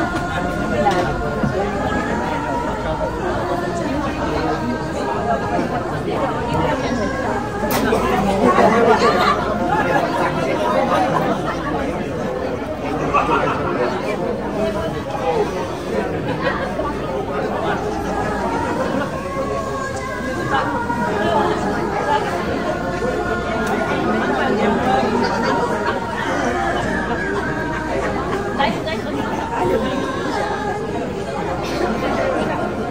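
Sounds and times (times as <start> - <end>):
overlapping conversation: 0.0 - 32.9.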